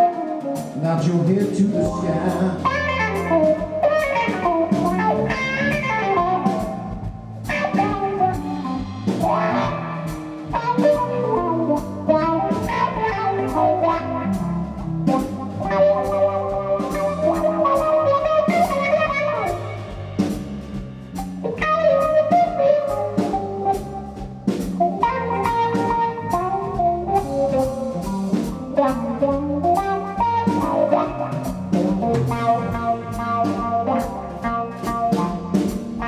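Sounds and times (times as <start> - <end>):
drum kit: 0.0 - 36.0
electric bass: 0.0 - 36.0
electric guitar lead: 0.0 - 36.0.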